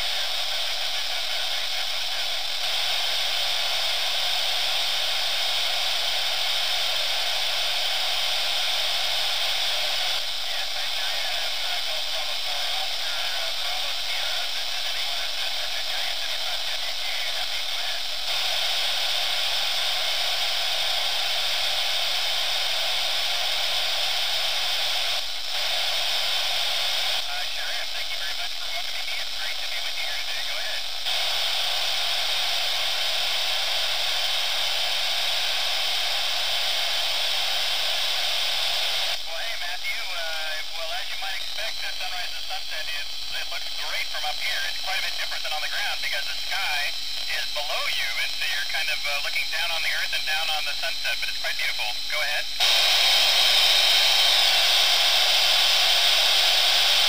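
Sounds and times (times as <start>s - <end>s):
faint radio voices: 0.0s - 5.8s, 6.4s - 22.1s, 23.0s - 36.4s, 37.0s - 57.0s
radio static hiss: 0.0s - 57.0s.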